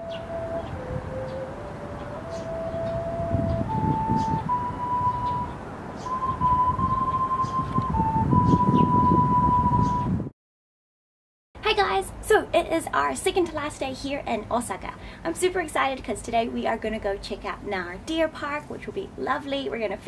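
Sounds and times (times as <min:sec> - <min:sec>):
slow melody of pure tones: 0:00.0 - 0:10.3.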